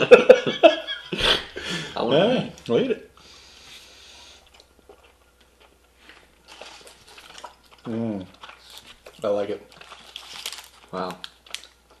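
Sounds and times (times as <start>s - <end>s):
chewing toffee: 2.6s - 12.0s.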